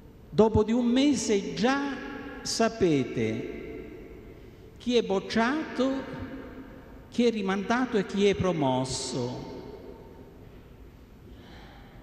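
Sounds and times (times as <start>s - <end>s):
faint room hiss: 0.0s - 12.0s
man breathing in: 11.3s - 12.0s.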